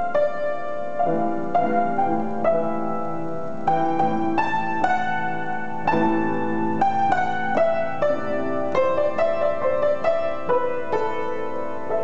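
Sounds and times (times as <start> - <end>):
solo upright piano: 0.0 - 12.0.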